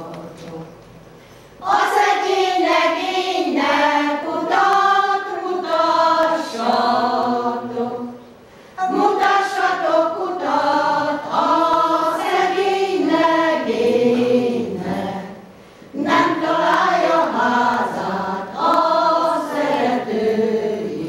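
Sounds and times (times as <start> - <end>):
women's choir singing unaccompanied: 0.0 - 21.0.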